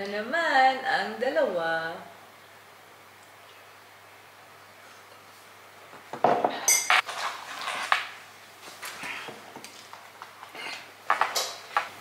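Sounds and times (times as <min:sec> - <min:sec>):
ceramic mugs knocking on table: 0:06.1 - 0:06.6.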